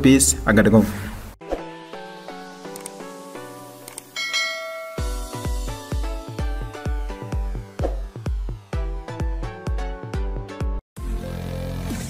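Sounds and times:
background music: 1.4s - 12.0s
bell chime: 4.2s - 6.0s.

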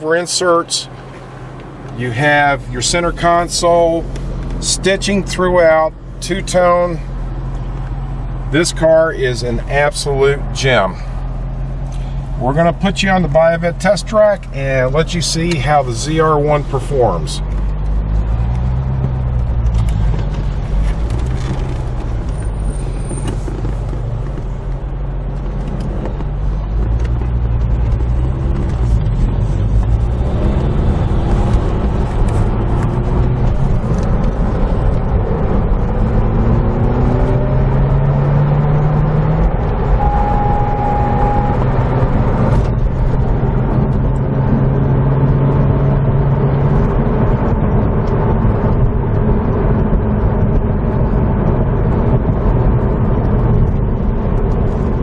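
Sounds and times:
tyre and road noise: 0.0s - 55.0s
car engine accelerating: 0.7s - 55.0s
steady high tone: 40.0s - 42.4s.

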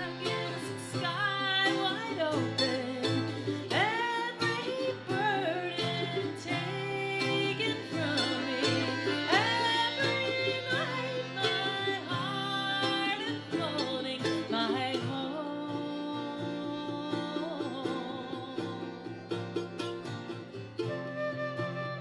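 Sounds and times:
accordion: 0.0s - 14.8s
fiddle: 0.0s - 22.0s
strummed acoustic guitar: 0.0s - 22.0s.

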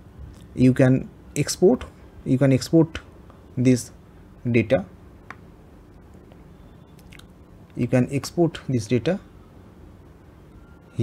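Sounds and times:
low background hiss: 0.0s - 11.0s
man speaking: 0.6s - 5.0s, 7.8s - 9.3s.

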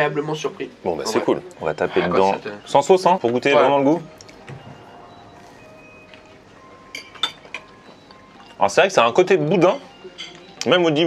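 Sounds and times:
fork clinking: 5.4s - 8.6s.

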